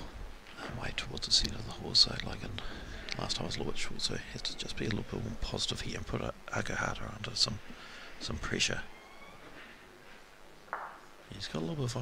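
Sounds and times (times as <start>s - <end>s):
soft rush of noise: 0.0s - 12.0s.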